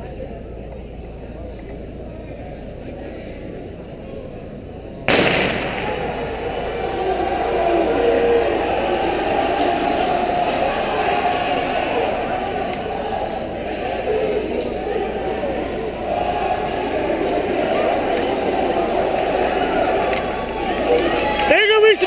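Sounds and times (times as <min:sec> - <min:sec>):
crowd chatter: 0:00.0 - 0:22.0
starter's pistol bang: 0:05.1 - 0:06.2
crowd cheering: 0:05.1 - 0:22.0.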